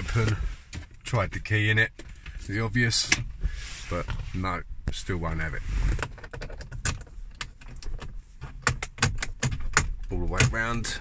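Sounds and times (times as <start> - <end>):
plastic latch clicks and rattles: 6.2 - 10.6.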